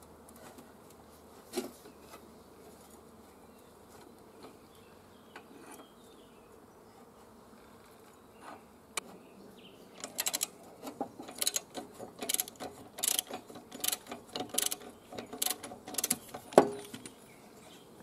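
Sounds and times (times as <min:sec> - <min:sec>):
faint steady buzz: 0:00.0 - 0:18.0
metal clicks and knocks of tools: 0:10.0 - 0:17.1.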